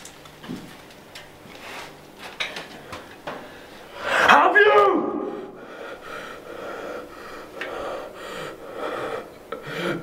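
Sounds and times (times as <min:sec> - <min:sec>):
man breathing harshly: 0:03.4 - 0:04.3, 0:05.2 - 0:10.0.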